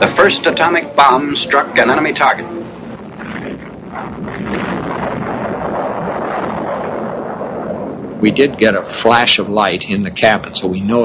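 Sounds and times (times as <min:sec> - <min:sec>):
explosion rumbling roar: 0:02.9 - 0:08.9.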